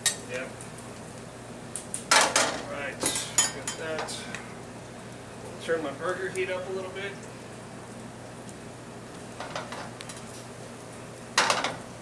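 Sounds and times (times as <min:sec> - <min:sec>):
food sizzling in pans: 0:00.0 - 0:12.0
steady low hum: 0:00.0 - 0:12.0.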